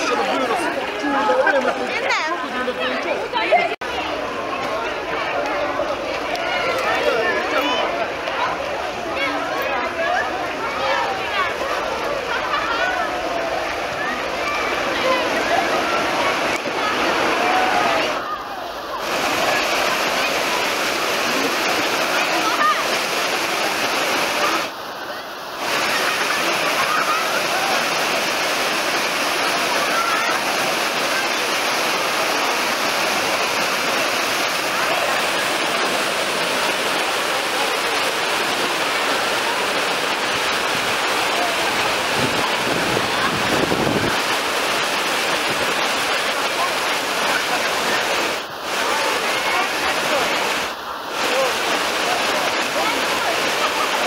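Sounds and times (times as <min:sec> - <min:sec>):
waves rushing and breaking: 0:00.0 - 0:05.2, 0:05.8 - 0:54.0
voices of many bathers: 0:00.0 - 0:54.0.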